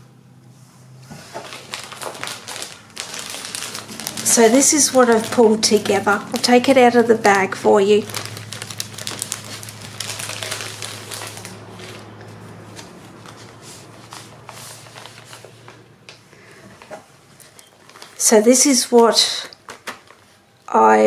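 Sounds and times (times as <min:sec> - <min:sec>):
paper rustling: 0:01.0 - 0:20.4
plastic sleeve crinkling: 0:01.1 - 0:15.8, 0:17.4 - 0:20.4.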